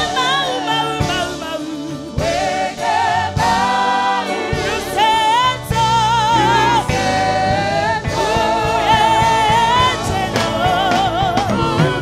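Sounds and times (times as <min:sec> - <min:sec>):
drum kit with cymbals: 0:00.0 - 0:12.0
person singing gospel melody: 0:00.0 - 0:12.0.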